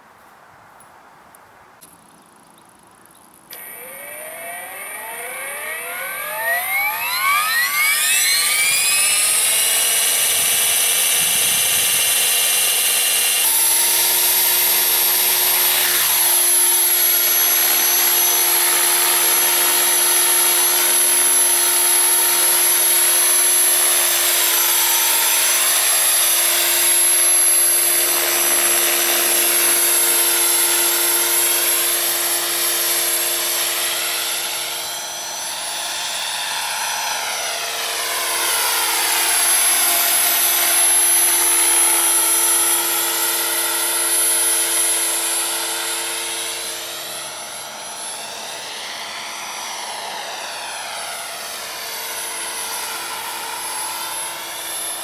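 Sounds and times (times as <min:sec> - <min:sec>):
model helicopter motor whining: 0:03.4 - 0:55.0.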